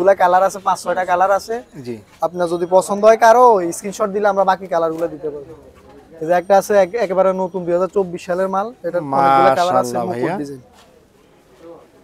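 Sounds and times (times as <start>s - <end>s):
man speaking: 0.0s - 10.6s.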